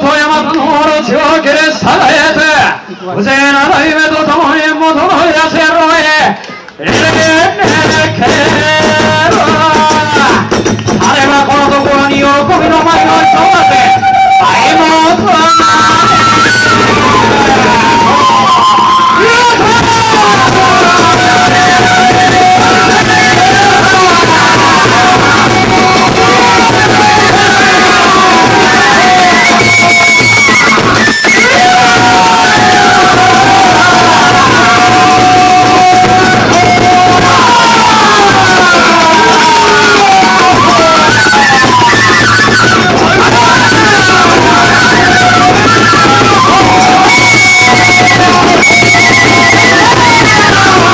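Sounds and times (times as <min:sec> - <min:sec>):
large drum: 0:06.8 - 0:50.9
bamboo flute melody: 0:06.9 - 0:50.9.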